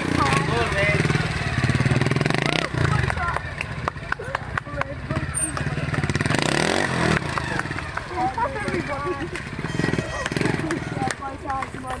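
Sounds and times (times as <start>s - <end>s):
motorcycle engine revving: 0.0s - 12.0s
spectators talking: 0.0s - 12.0s.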